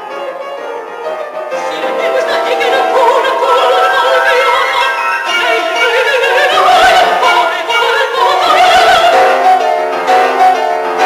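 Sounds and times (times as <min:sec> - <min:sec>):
grand piano: 0:00.0 - 0:11.0
woman singing with vibrato: 0:01.6 - 0:09.6.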